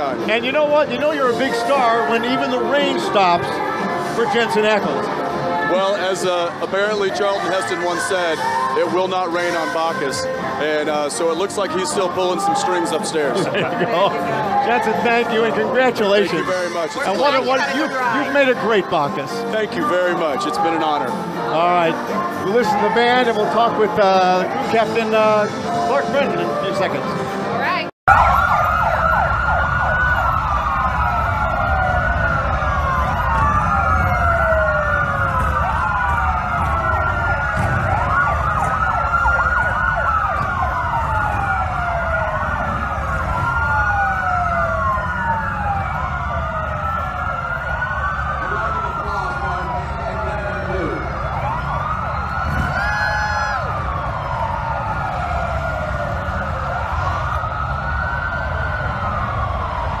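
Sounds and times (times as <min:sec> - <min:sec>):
sirens wailing: 0:00.0 - 1:00.0.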